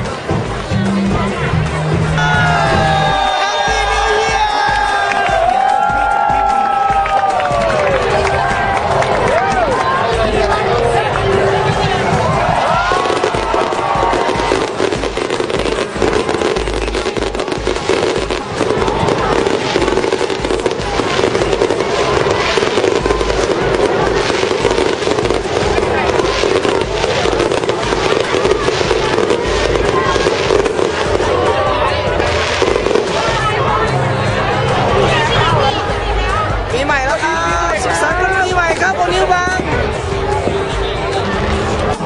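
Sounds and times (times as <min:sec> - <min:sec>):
crowd voices: 0:00.0 - 0:42.0
fireworks crackling and banging: 0:00.0 - 0:42.0
music: 0:00.0 - 0:42.0.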